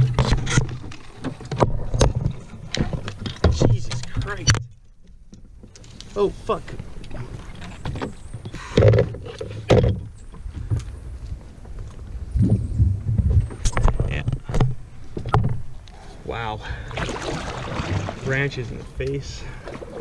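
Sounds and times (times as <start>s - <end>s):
paddle knocking against canoe: 0.0s - 15.8s.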